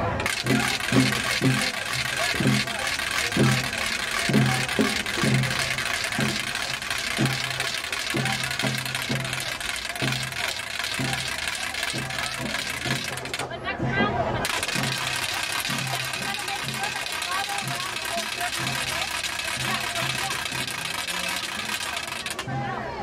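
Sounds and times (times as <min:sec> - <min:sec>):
crowd noise: 0:00.0 - 0:23.0
protesters chanting in rhythm: 0:19.6 - 0:23.0.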